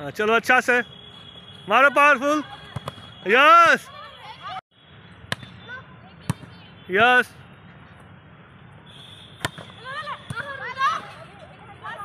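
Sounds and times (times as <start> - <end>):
players shouting: 1.6 - 4.6, 9.4 - 12.0.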